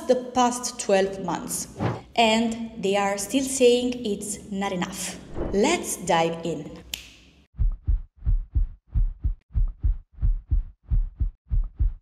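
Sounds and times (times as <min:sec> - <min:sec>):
heartbeat thumps: 0:07.6 - 0:12.0.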